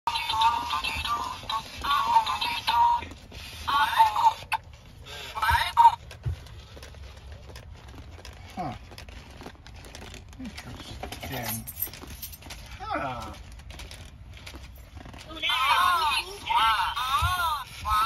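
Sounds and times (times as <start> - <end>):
toys chattering in electronic voices: 0.1 - 6.1, 15.3 - 18.0.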